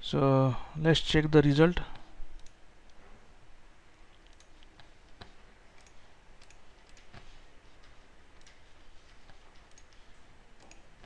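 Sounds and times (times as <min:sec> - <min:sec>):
low steady hiss: 0:00.0 - 0:11.0
computer mouse clicks: 0:02.3 - 0:03.0, 0:04.1 - 0:11.0.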